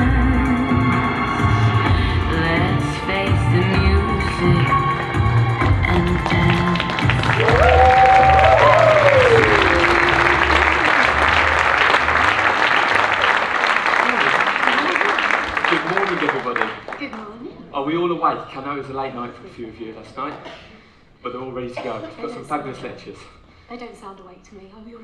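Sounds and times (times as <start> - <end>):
dance-band music with singer: 0.0 - 8.8
audience applause: 6.0 - 17.2
audience cheer: 7.0 - 16.5.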